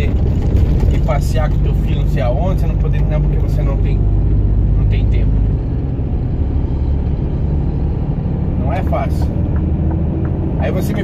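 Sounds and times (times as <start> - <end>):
diesel truck engine droning: 0.0 - 11.0
road noise: 0.0 - 11.0.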